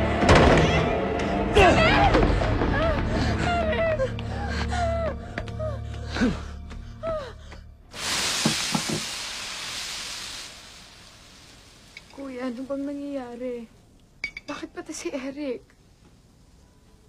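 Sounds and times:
low droning film score: 0:00.0 - 0:07.9
food sizzling on hot plate: 0:08.0 - 0:13.3.

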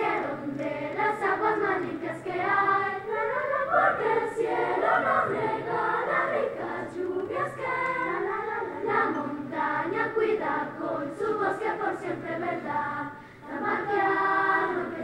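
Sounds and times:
children's choir singing: 0:00.0 - 0:15.0.

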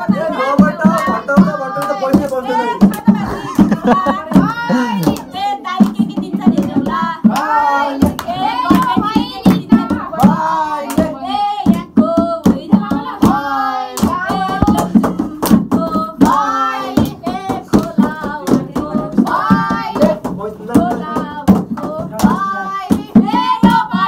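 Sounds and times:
group of people singing: 0:00.0 - 0:24.0
rhythmic hand clapping: 0:00.0 - 0:24.0.

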